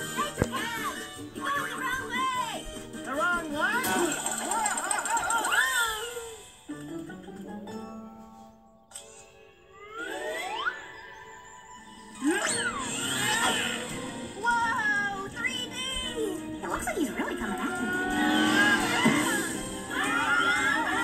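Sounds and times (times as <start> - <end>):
cartoon music from tv: 0.0 - 21.0
rising whistle-like slides: 9.7 - 13.9.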